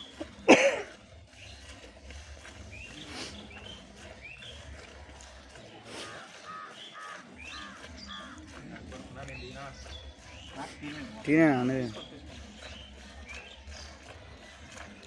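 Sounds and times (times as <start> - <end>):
birds chirping: 0.0 - 15.0
harsh crow-like calls: 6.0 - 8.4.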